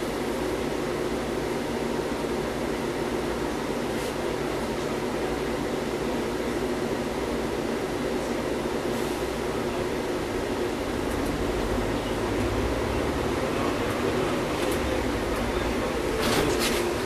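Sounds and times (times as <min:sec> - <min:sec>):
bus engine idling and revving: 0:00.0 - 0:17.0.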